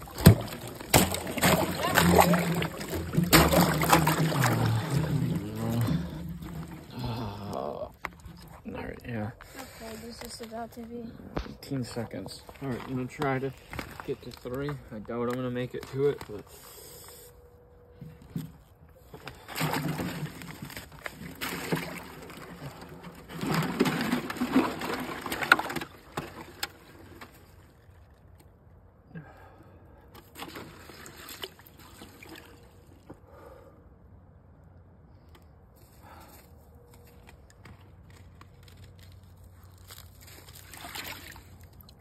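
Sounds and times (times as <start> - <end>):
water sloshing in bathtub: 0.0 - 7.0.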